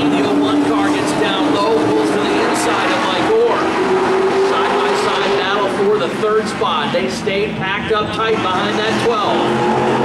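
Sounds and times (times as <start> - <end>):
race car engines droning: 0.0 - 10.0.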